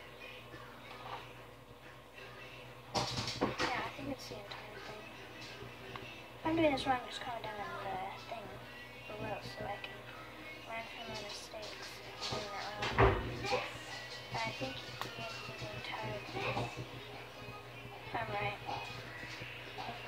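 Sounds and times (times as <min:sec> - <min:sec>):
quiet background music: 0:00.0 - 0:20.0.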